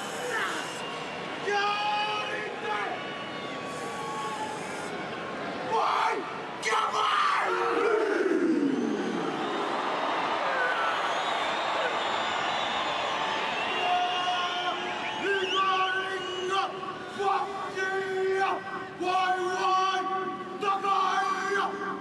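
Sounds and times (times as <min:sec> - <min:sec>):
stadium crowd cheering: 0:00.0 - 0:22.0.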